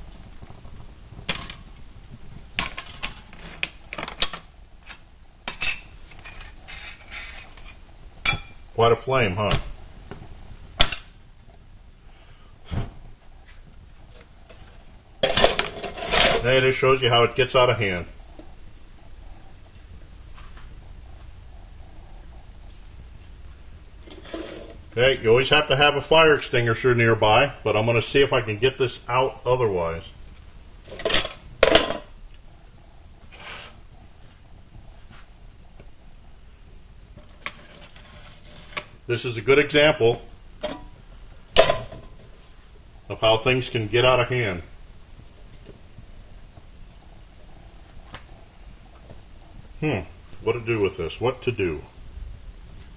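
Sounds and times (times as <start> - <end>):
flames rushing: 0.0 - 4.0.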